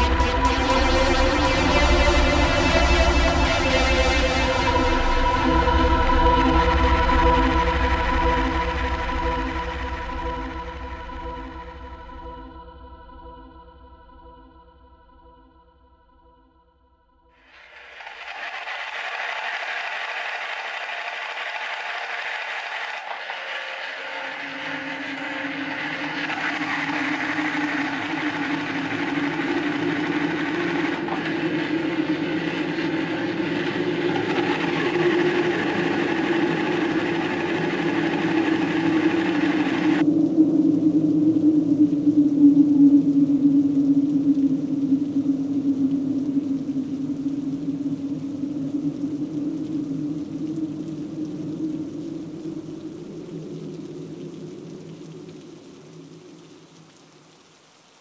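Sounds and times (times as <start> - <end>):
steady low hum: 20.8 - 40.1.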